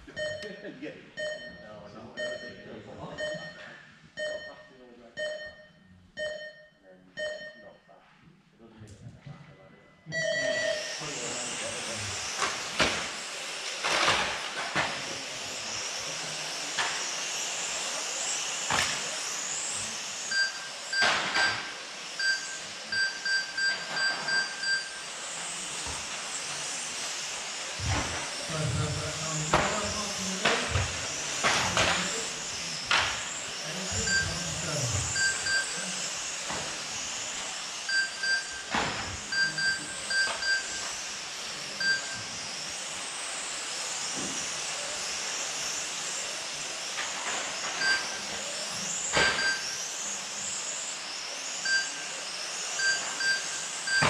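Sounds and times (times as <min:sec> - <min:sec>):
short electronic beeps: 0:00.1 - 0:07.9, 0:09.9 - 0:10.9, 0:20.3 - 0:25.0, 0:33.9 - 0:34.4, 0:35.0 - 0:35.8, 0:37.9 - 0:38.7, 0:39.3 - 0:40.9, 0:41.8 - 0:42.3, 0:47.8 - 0:48.2, 0:49.2 - 0:49.8, 0:51.7 - 0:52.0
rc car motors whining: 0:10.1 - 0:54.0.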